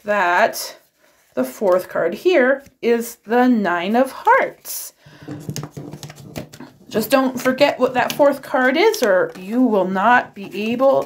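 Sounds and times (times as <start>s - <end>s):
playing cards clicking and tapping: 5.1s - 9.8s.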